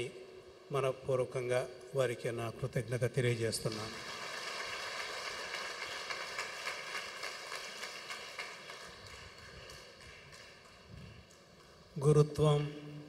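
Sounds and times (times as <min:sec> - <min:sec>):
crowd clapping: 0:03.6 - 0:12.0.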